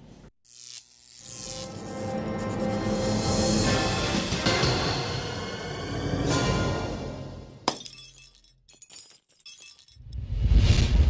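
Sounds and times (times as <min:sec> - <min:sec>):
glass pieces tinkling: 0:07.7 - 0:10.1
glass shattering: 0:07.7 - 0:10.2.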